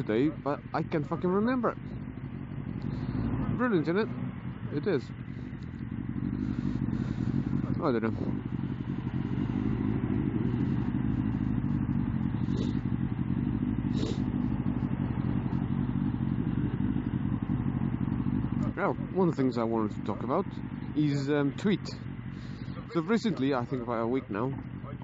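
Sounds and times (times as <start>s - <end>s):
motorcycle engine at low revs: 0.0s - 25.0s.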